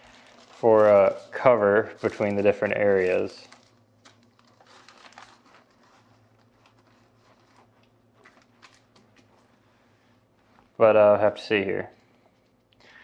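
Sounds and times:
plastic bags crinkling: 0.0s - 10.8s
low steady hum: 0.0s - 13.0s.

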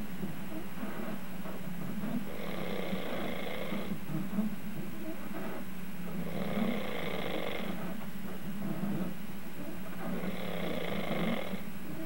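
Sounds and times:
man snoring: 10.2s - 11.6s.

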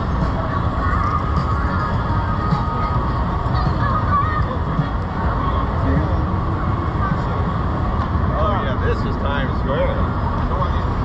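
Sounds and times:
crowd voices: 0.0s - 11.0s
low city rumble: 0.0s - 11.0s.

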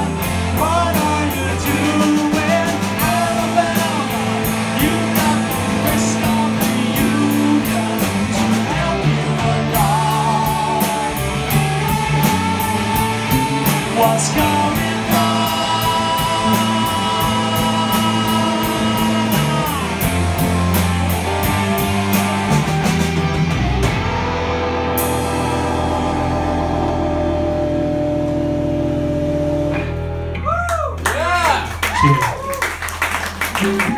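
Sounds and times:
bending guitar notes: 0.0s - 31.0s
live rock band playing: 0.0s - 33.9s.

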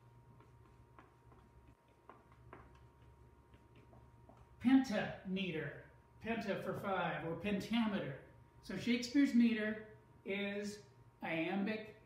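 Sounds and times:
marker writing on a whiteboard: 0.3s - 4.6s.

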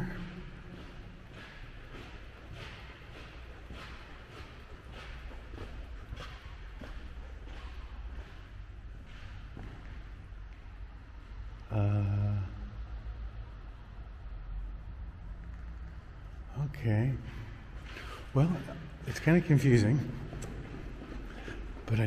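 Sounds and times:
footsteps on stone floor: 0.0s - 10.6s, 17.8s - 22.0s.

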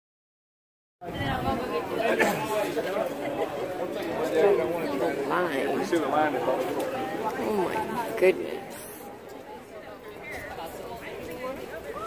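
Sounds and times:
people talking in a crowd: 1.0s - 12.0s.

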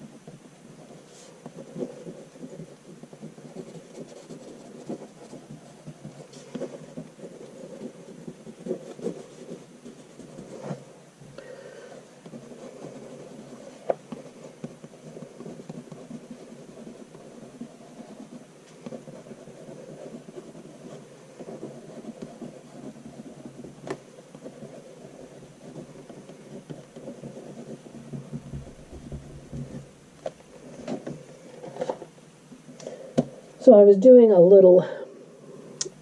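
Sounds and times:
crayon scratching on paper: 0.0s - 32.1s.

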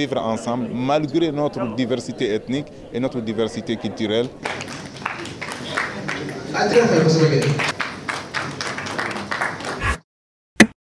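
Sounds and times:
audience applauding: 4.4s - 10.0s.

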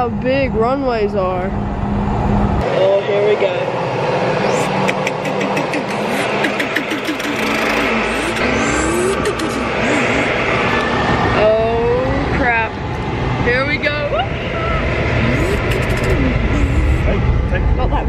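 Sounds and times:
jet engine and runway rush: 0.0s - 18.0s.

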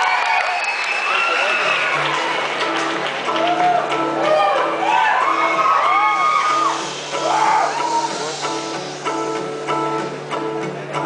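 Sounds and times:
audience cheering and whooping: 0.0s - 8.4s
acoustic guitars picking: 6.5s - 11.0s.

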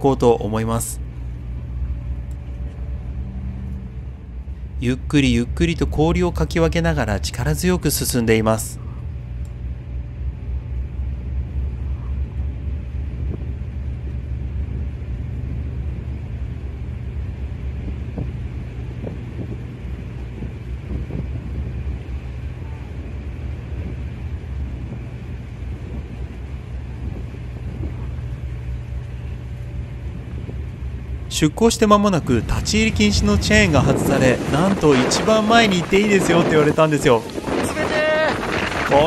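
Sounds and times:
ship engine droning: 0.0s - 39.0s.

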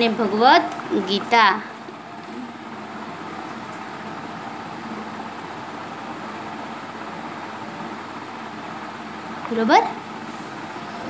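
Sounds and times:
low room hum and hiss: 0.0s - 11.0s.

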